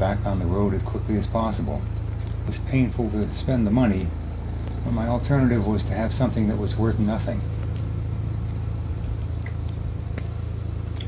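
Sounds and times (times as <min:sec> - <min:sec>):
rotary engine idling: 0:00.0 - 0:11.0.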